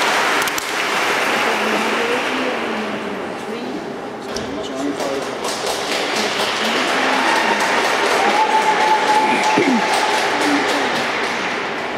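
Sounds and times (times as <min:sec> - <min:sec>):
audience applause: 0:00.0 - 0:02.8, 0:05.0 - 0:11.9
voices: 0:06.0 - 0:11.2.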